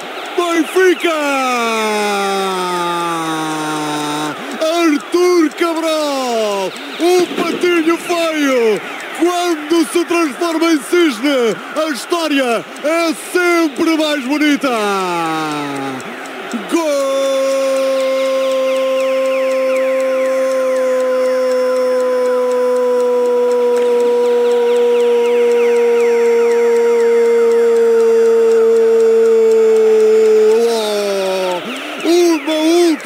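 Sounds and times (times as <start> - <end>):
man shouting a long goal cry: 0.4 - 33.0.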